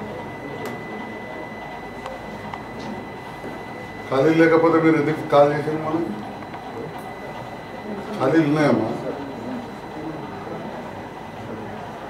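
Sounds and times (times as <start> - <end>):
faint murmur of voices: 0.0 - 12.0
room background noise: 0.0 - 12.0.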